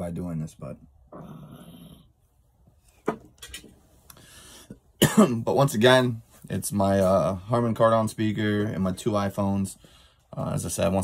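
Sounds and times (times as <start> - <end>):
man inhaling smoke: 4.1 - 4.8
faint throat clearing: 5.0 - 5.4.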